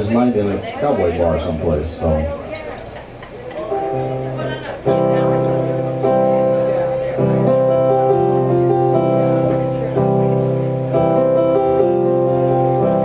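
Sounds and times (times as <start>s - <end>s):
keyboard playing piano chords: 3.6s - 13.0s.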